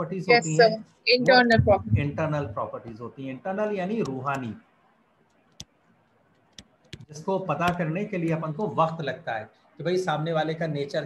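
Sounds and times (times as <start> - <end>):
stylus tapping on tablet: 5.5 - 7.9.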